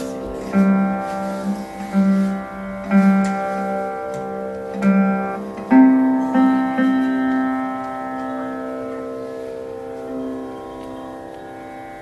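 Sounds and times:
slide lute plucked: 0.0 - 12.0.

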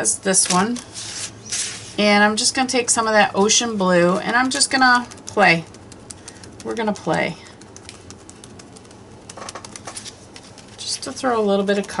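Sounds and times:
sponge dabbing paint: 0.6 - 12.0.

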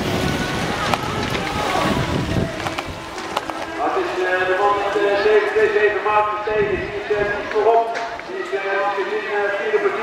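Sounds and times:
bikes clicking on track: 0.0 - 5.8
wind rumble on microphone: 0.0 - 7.6.

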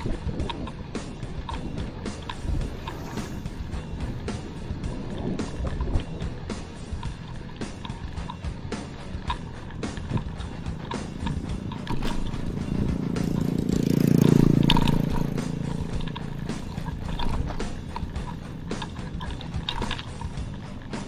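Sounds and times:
bicycle rattling over rough road: 0.0 - 21.0
motorcycle passing by: 0.0 - 21.0.

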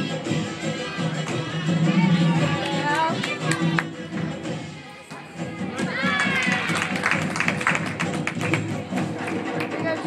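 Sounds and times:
music in large hall: 0.0 - 10.0.

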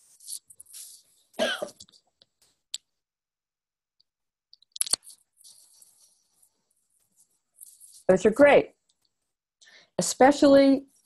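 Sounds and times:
person coughing: 1.4 - 1.8.

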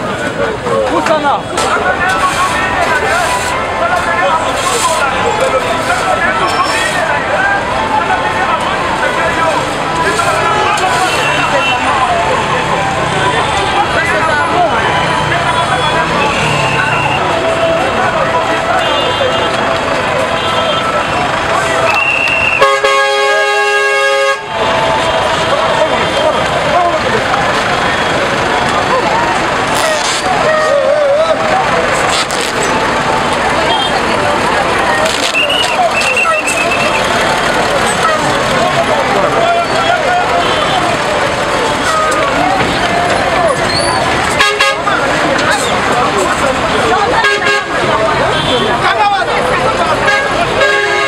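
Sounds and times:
people talking and calling out: 0.0 - 51.0
street noise: 0.0 - 51.0
vehicle traffic: 0.0 - 51.0.

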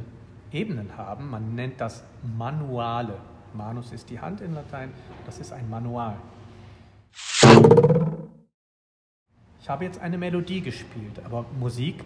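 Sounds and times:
swoosh into buzzy tone: 7.2 - 8.3.

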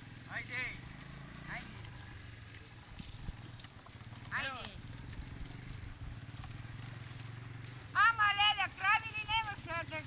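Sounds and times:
dirt bike engine idling: 0.0 - 10.0.

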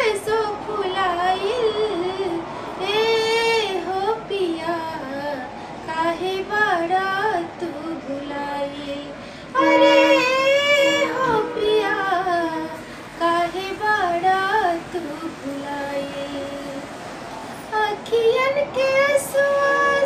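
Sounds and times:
woman singing folk song: 0.0 - 16.9, 17.7 - 20.0.

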